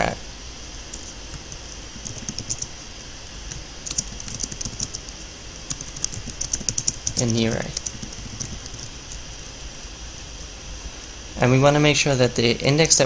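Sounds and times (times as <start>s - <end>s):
computer keyboard typing: 0.9s - 2.8s, 3.5s - 9.2s.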